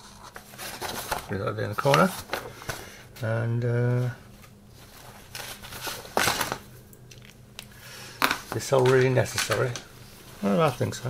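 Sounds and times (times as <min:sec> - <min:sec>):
paper and plastic rustling: 0:00.0 - 0:02.9, 0:03.9 - 0:07.4, 0:08.2 - 0:11.0.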